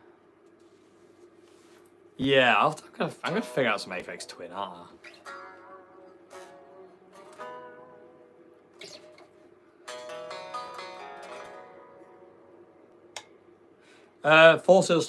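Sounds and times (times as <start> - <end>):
electric guitar notes ringing: 3.3 - 14.0.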